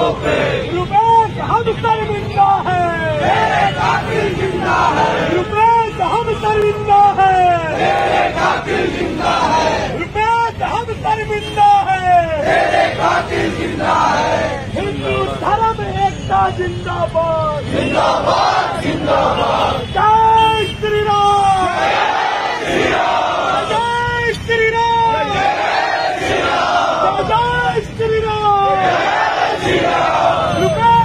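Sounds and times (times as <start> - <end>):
crowd shouting in unison: 0.0 - 0.7, 3.1 - 5.4, 7.6 - 10.0, 12.3 - 14.8, 17.7 - 19.8, 21.6 - 23.8, 25.1 - 27.3, 28.7 - 30.8
man calling out: 0.7 - 3.2, 5.3 - 7.7, 9.9 - 12.4, 19.8 - 21.8, 23.7 - 25.4, 27.2 - 28.9, 30.6 - 31.0.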